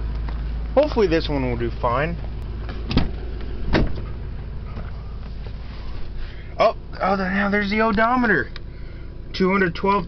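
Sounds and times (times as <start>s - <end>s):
steady low rumble: 0.0s - 10.0s
heavy thump: 2.6s - 4.9s
truck door opening click: 2.8s - 4.1s.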